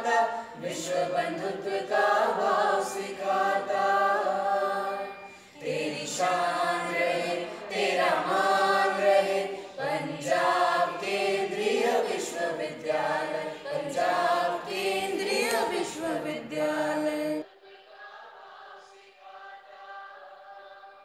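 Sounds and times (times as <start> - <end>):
choir singing anthem: 0.0 - 21.0.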